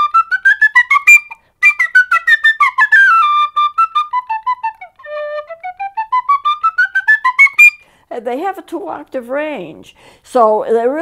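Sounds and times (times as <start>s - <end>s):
tin whistle playing a scale: 0.0s - 7.8s.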